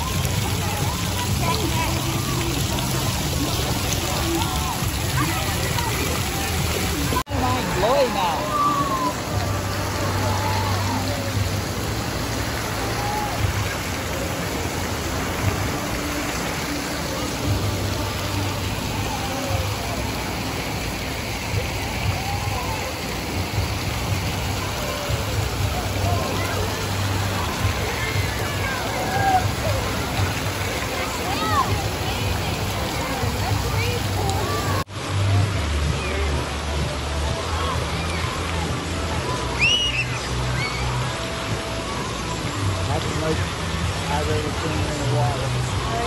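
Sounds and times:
faint voices: 0.0 - 46.0
spray fountain: 0.0 - 46.0
water rushing and splashing: 0.0 - 46.0.

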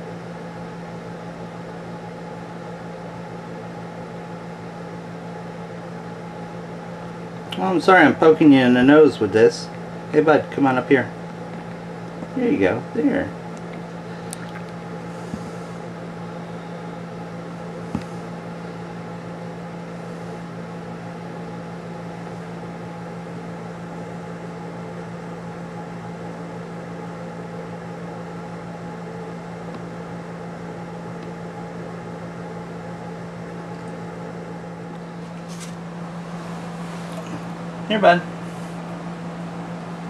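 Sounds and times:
low machine hum: 0.0 - 40.0.

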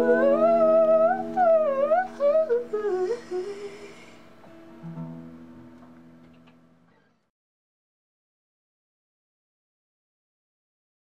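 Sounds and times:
ringing acoustic guitar chord: 0.0 - 2.4.

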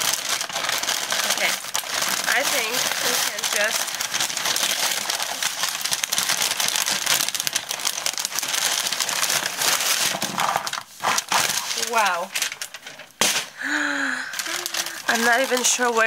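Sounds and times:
plastic packaging crinkling: 0.0 - 16.0.

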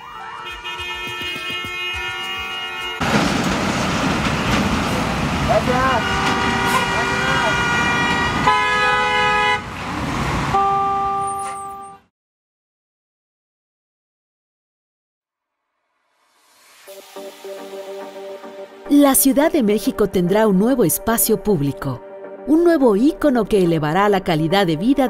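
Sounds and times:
car horns honking: 0.0 - 3.4, 4.3 - 9.8, 10.4 - 12.1
idling and crawling traffic: 0.0 - 12.0.

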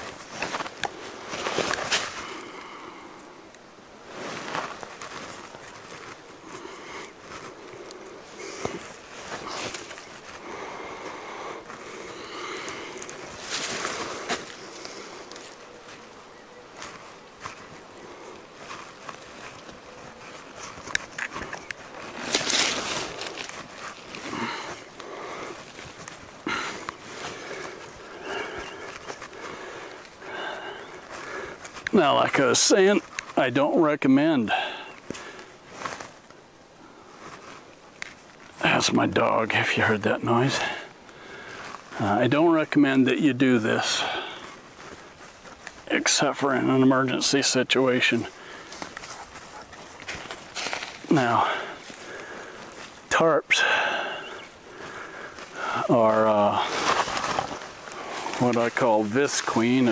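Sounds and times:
footsteps rustling in dry leaves: 0.0 - 2.5, 3.9 - 33.5, 35.0 - 38.6, 43.8 - 53.1, 54.3 - 59.9.

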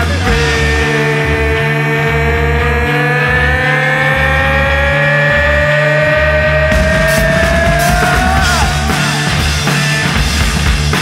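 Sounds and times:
hard rock music: 0.0 - 11.0.

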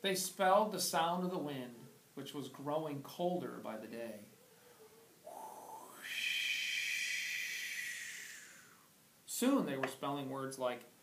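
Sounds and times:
man hooting: 5.2 - 8.8
man's breathy whoosh: 5.3 - 8.9.

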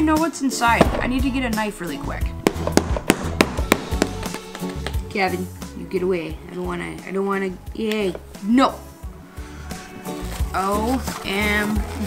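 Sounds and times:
bass line: 0.7 - 6.1
sharp tapping beat: 0.8 - 5.0.

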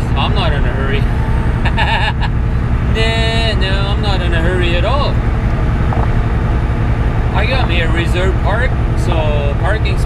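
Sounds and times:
diesel truck engine drone: 0.0 - 10.0
road noise: 0.0 - 10.0.

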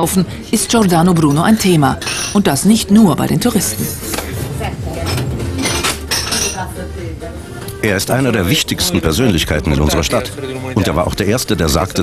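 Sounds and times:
murmur of talk: 0.0 - 12.0
china cups clinking: 1.2 - 2.7, 5.0 - 6.7
man talking: 7.8 - 12.0.

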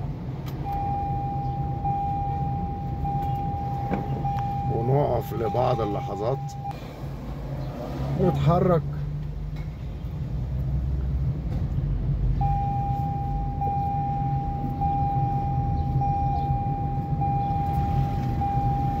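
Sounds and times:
car road and engine rumble: 0.0 - 19.0
steady high-pitched tone: 0.7 - 6.8.

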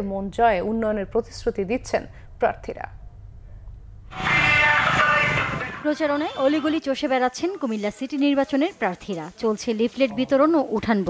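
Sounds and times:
woman narrating: 0.0 - 3.0, 5.8 - 11.0
horn loudspeaker blaring: 4.1 - 6.7.

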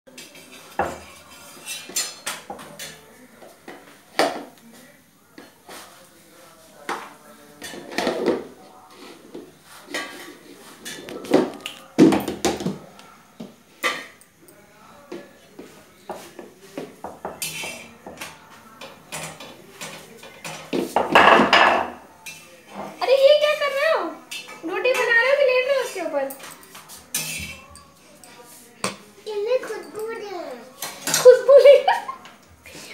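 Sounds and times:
knocks and clinks of kitchen utensils: 0.1 - 3.0, 16.8 - 23.0, 24.3 - 29.1, 29.7 - 31.5.

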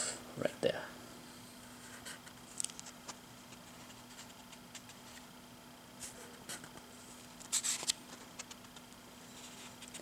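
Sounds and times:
paper pages rustling: 7.4 - 10.0.

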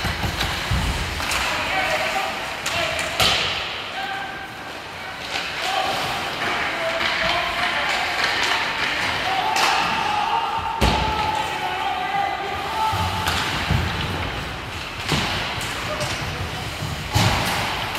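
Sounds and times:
sticks and puck knocking boards: 0.0 - 1.5
players and spectators calling out: 5.5 - 13.6.

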